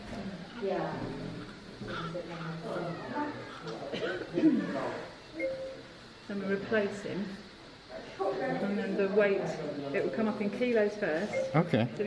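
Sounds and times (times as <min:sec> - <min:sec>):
newborn baby crying: 0:01.3 - 0:03.8.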